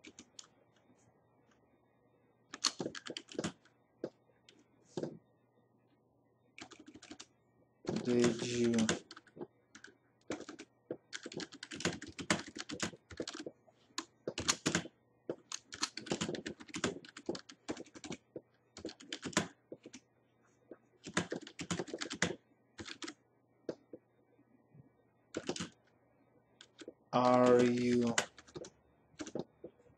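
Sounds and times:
typing on computer keyboard: 0:00.0 - 0:00.5, 0:02.6 - 0:03.7, 0:06.6 - 0:07.3, 0:07.9 - 0:20.0, 0:21.0 - 0:23.2, 0:25.4 - 0:25.8, 0:26.6 - 0:29.7.

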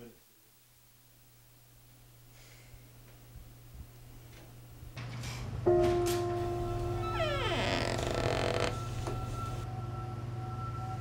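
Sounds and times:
soft sustained music tone: 0:05.7 - 0:11.0.

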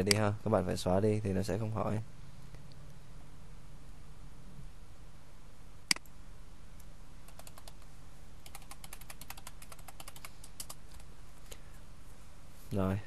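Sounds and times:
faint low hum: 0:00.0 - 0:13.0
computer keyboard typing: 0:07.3 - 0:07.8, 0:08.4 - 0:11.1.

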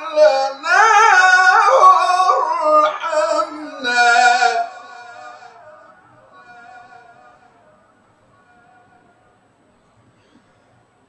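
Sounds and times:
man chanting melodic recitation: 0:00.0 - 0:07.5.

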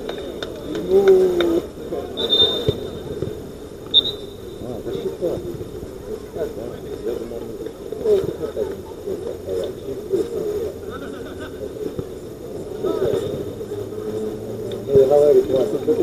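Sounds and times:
players shouting: 0:00.0 - 0:05.5
ball being struck: 0:02.2 - 0:04.4.

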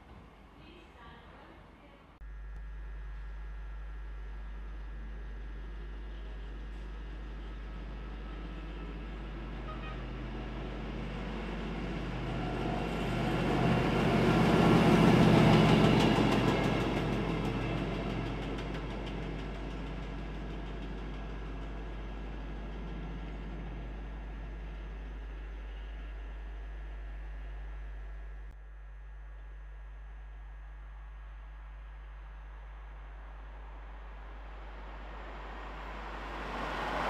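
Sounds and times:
rail machine diesel engine and wheels: 0:00.0 - 0:28.6, 0:30.6 - 0:37.0.

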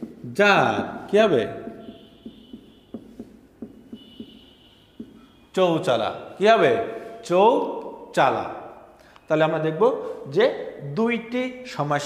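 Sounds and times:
marker pen writing on whiteboard: 0:00.0 - 0:06.2.

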